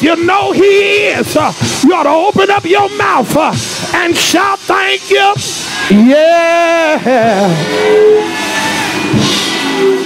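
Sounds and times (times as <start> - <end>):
drum hit: 0.2 - 4.4, 5.3 - 8.0, 9.0 - 9.8
cymbal crash: 1.5 - 10.0.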